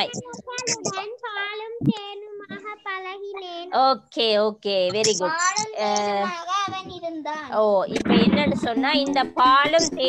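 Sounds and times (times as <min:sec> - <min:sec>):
person reading aloud sing-song: 0:00.0 - 0:04.1, 0:04.8 - 0:10.0.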